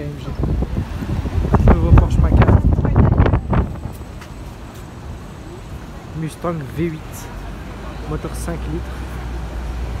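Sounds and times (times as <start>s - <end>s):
wind buffeting microphone: 0.0s - 4.2s
road traffic passing: 0.0s - 10.0s.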